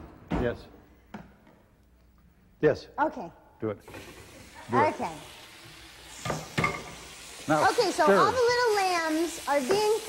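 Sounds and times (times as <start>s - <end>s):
meat sizzling in a frying pan: 3.8s - 10.0s.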